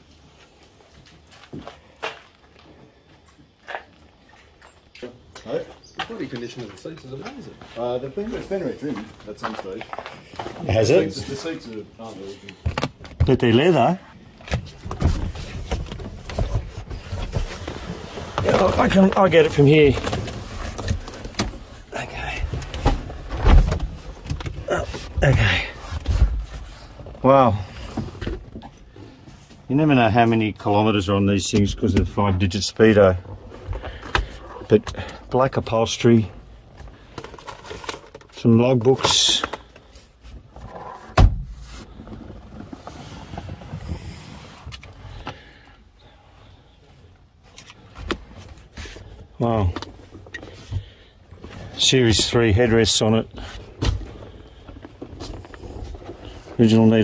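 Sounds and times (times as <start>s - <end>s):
rustling and handling noise: 5.8s - 31.0s, 31.6s - 45.6s, 46.8s - 57.0s
knocks and rustles in car: 14.4s - 19.2s, 20.0s - 27.2s, 40.5s - 44.2s.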